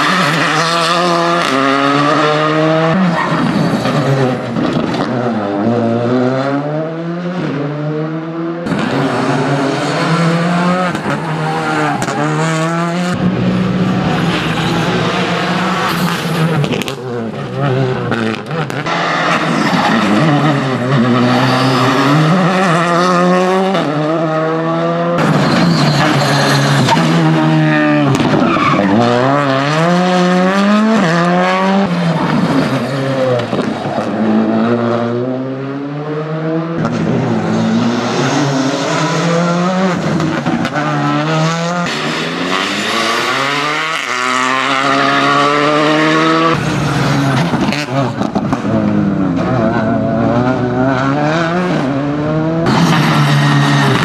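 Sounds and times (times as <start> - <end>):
rally car engine revving: 0.0 - 54.0
tyre squeal: 19.3 - 22.8, 25.2 - 29.3.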